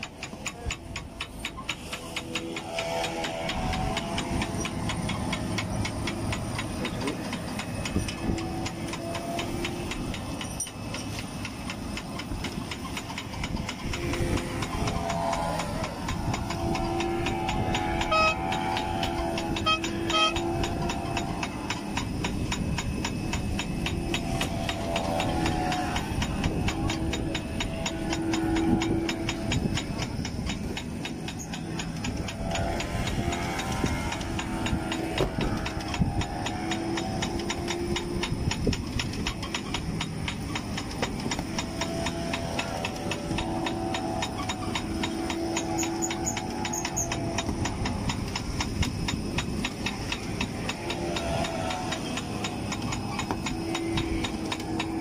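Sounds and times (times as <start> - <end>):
boat engine running: 0.0 - 55.0
rushing wind: 0.0 - 55.0.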